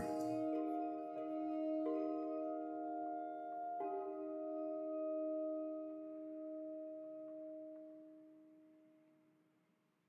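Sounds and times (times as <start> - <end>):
bell-like held chord: 0.0 - 7.8.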